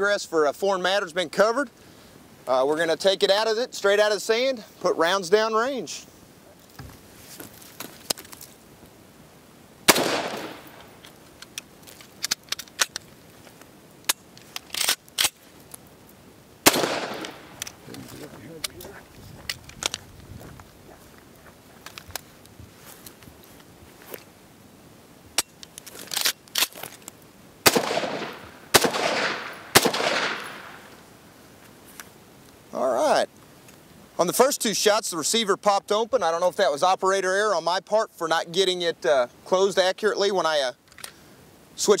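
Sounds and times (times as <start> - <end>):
rifle shots echoing: 9.9 - 11.0, 16.6 - 17.7, 27.6 - 30.9.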